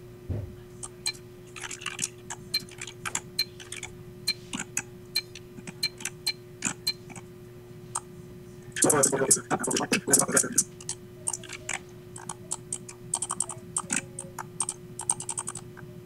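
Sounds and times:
faint steady hum: 0.0 - 16.0
computer mouse clicks: 0.8 - 7.2, 10.7 - 15.8
keyboard key presses: 10.8 - 15.7.

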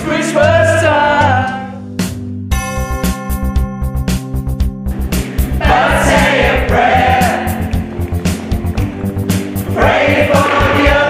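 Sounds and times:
group singing pop song: 0.0 - 1.7, 5.3 - 7.8, 9.6 - 11.0
backing music with drum beat: 0.0 - 11.0.

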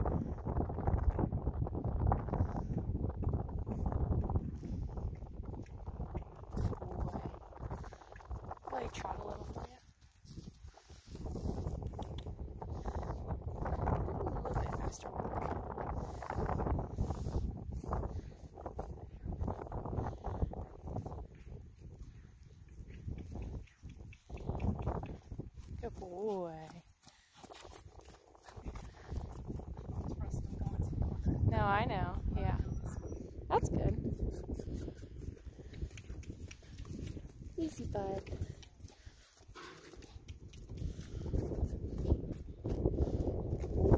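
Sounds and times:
wind buffeting microphone: 0.0 - 43.9
horse hoofbeats trotting on dirt: 0.6 - 16.2, 17.9 - 31.5, 33.9 - 43.9.

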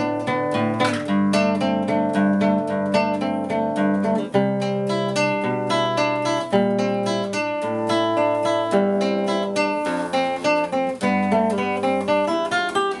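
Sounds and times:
fingerstyle classical guitar: 0.0 - 13.0.

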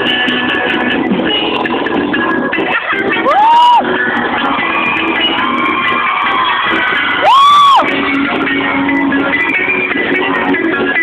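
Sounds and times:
live band with electric guitars: 0.0 - 11.0
faint cheer: 2.8 - 10.0
person whooping: 3.2 - 3.9, 7.2 - 7.9.

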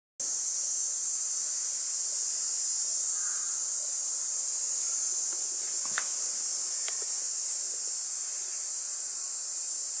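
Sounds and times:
high-pitched hiss: 0.2 - 10.0
faint clicks: 5.3 - 6.2, 6.8 - 7.2.

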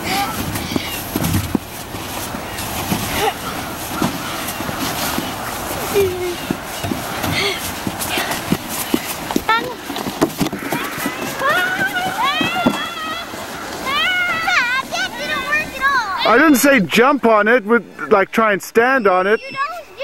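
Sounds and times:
children chattering and shouting: 0.0 - 1.3, 2.0 - 16.9, 17.8 - 20.0
steady outdoor hiss: 0.0 - 20.0.

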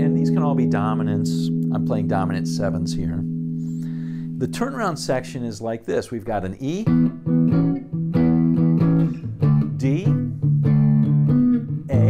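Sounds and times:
electric guitar chords strummed: 0.0 - 4.8, 6.9 - 12.0.

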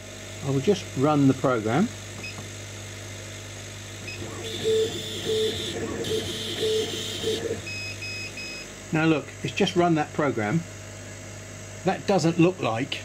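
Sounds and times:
laser cutter motors whirring: 3.2 - 11.2.

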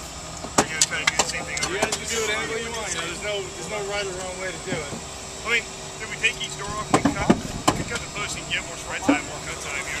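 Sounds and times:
indistinct voices talking: 0.5 - 10.0
sharp knocks: 6.9 - 8.1.

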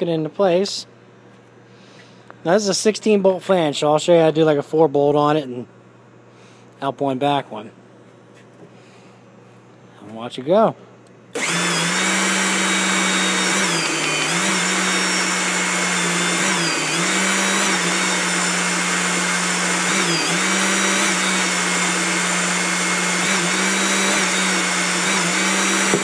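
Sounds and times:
hydraulic pump motor hum: 11.3 - 26.0.

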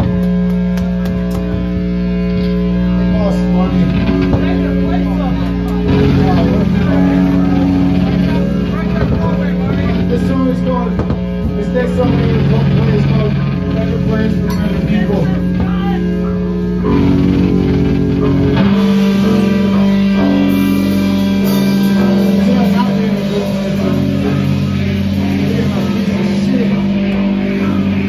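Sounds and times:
bass guitar held notes: 0.0 - 28.0
crowd chatter: 0.0 - 28.0
electric guitar held notes: 0.0 - 28.0.

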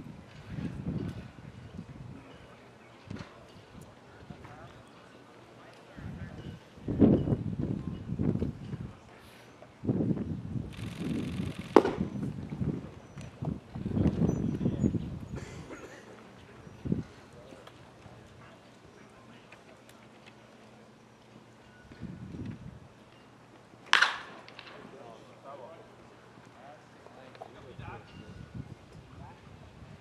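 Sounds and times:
faint distant voices: 0.0 - 30.0.

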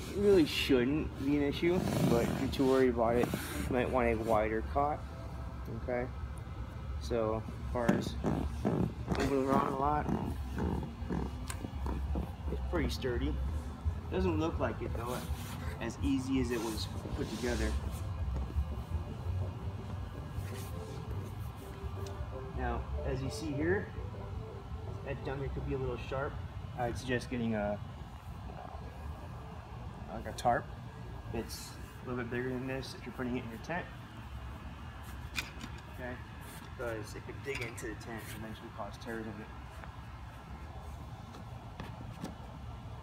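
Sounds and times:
folding cot creaking: 1.4 - 3.9, 7.7 - 13.1.

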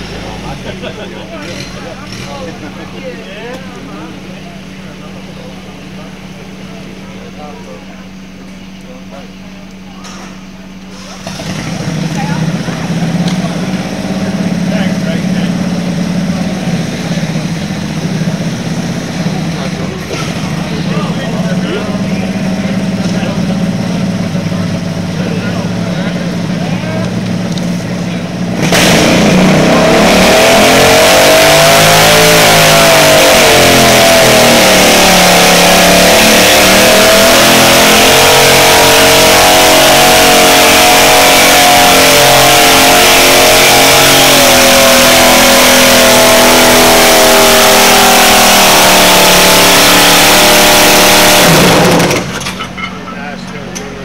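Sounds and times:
garden tractor engine at full throttle: 10.9 - 52.7.

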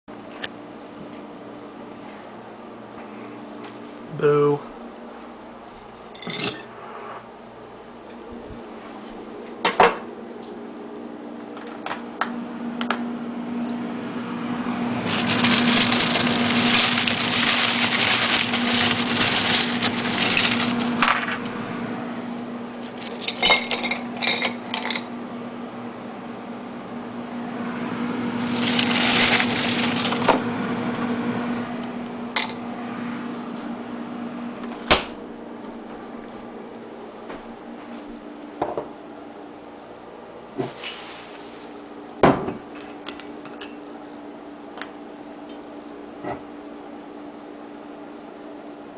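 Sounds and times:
plastic bag crinkling: 15.1 - 21.0, 28.4 - 30.3, 40.7 - 41.8
ice cubes clinking into glass: 15.1 - 21.1, 28.4 - 30.3
object knocking on countertop: 42.2 - 42.6.

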